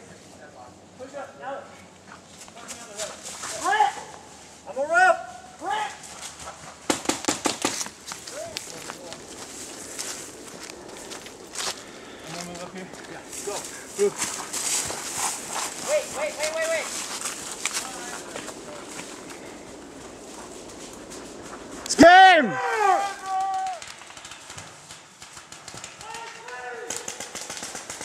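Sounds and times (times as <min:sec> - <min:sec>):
paintball marker shots: 0:06.9 - 0:08.0
loud shouted calls: 0:21.8 - 0:24.0, 0:25.9 - 0:27.2.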